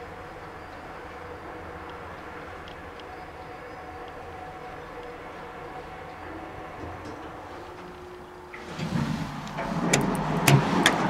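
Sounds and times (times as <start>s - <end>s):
lift door operator rumbling: 8.5s - 11.0s.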